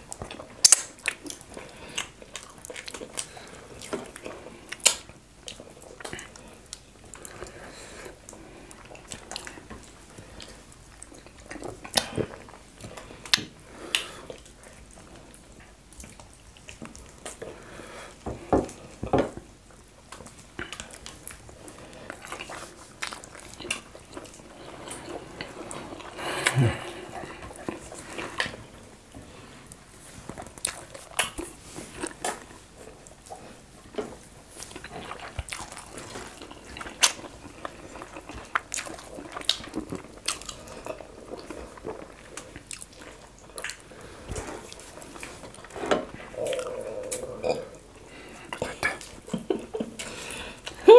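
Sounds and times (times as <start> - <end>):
wet chewing: 19.7 - 28.8, 29.7 - 50.8
mouth clicks: 46.4 - 47.8.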